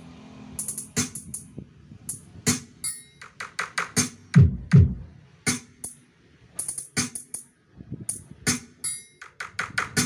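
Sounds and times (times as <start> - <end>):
music through speakers: 0.6 - 1.4, 2.1 - 6.0, 6.6 - 10.0.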